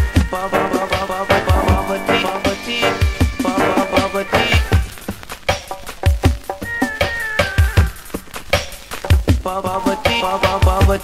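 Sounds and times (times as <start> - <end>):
reggae dub instrumental: 0.1 - 5.7
high tone sliding down: 1.3 - 4.7.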